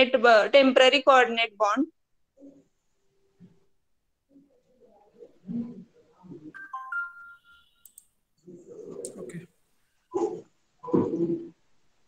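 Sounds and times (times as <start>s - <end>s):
electronic notification chime: 6.6s - 7.8s.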